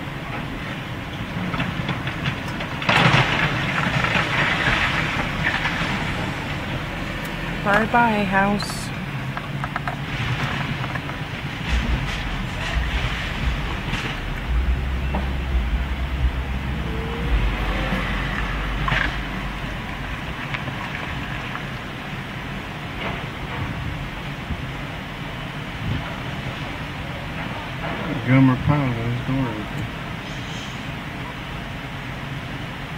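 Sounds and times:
wind rumble on microphone: 0.0s - 32.8s
excavator engine drone: 0.0s - 32.9s
timber cracking: 1.4s - 7.8s, 9.3s - 16.6s.

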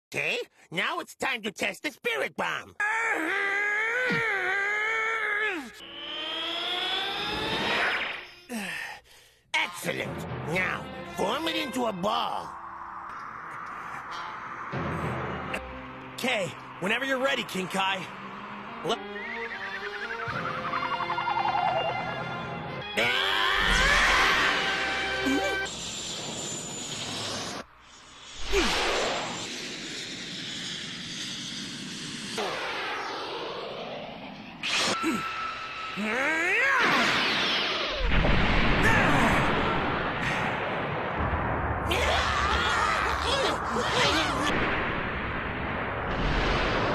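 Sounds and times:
man groaning: 2.8s - 5.8s
person shouting: 2.8s - 5.8s, 41.9s - 44.5s
rising whine sound effect: 5.4s - 8.5s, 11.6s - 22.8s, 23.8s - 38.8s
chase music: 9.8s - 12.6s, 14.8s - 23.0s
whoosh effects: 25.7s - 35.9s.

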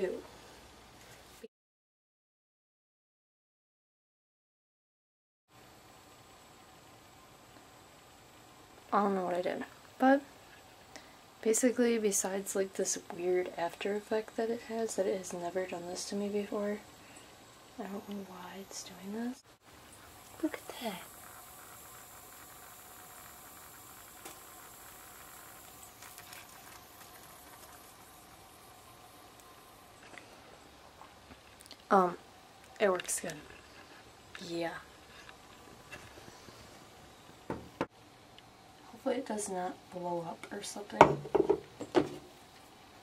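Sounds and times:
aerosol can fizzing hiss: 20.1s - 30.4s.

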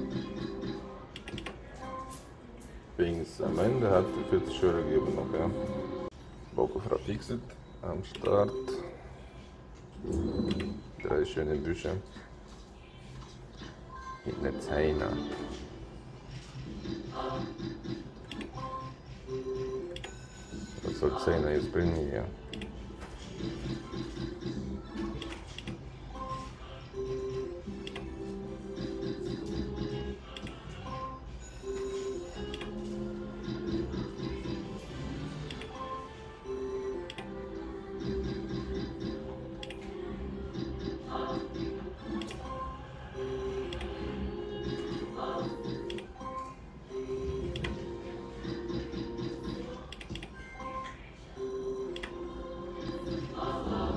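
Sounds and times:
low pitched slot machine sound: 0.0s - 2.4s, 3.2s - 9.0s, 13.6s - 53.9s
clicks: 1.1s - 1.6s, 37.1s - 37.3s, 38.2s - 39.9s, 42.0s - 42.5s, 48.4s - 50.4s, 51.9s - 52.2s.

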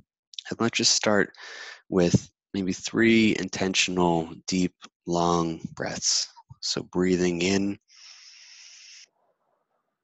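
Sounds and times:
person inhaling deeply: 1.4s - 1.9s, 7.9s - 9.0s.

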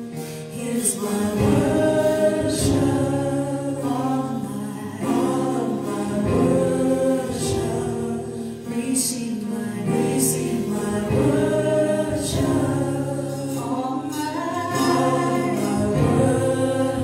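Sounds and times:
keyboard: 0.0s - 17.0s
women singing in harmony: 0.0s - 17.0s.

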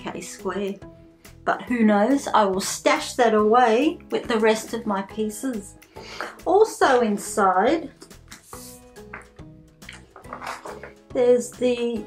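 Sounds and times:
soft background music: 0.0s - 12.0s
magazine pages rustling: 8.2s - 11.0s.

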